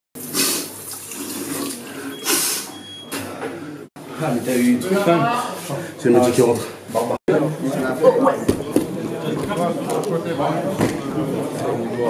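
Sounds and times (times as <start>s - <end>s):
tap water running into basin: 0.2s - 1.9s.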